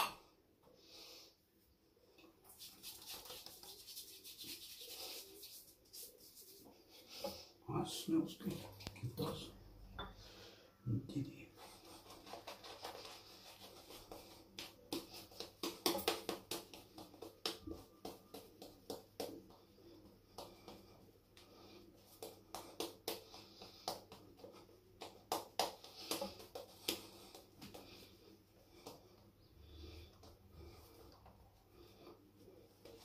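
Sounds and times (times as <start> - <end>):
shaving brush wet brushing: 2.4 - 6.8, 11.6 - 18.7.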